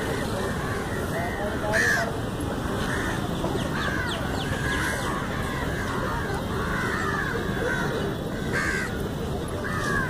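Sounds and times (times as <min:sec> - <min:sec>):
crows cawing: 0:00.0 - 0:02.2, 0:03.8 - 0:09.0, 0:09.6 - 0:10.0.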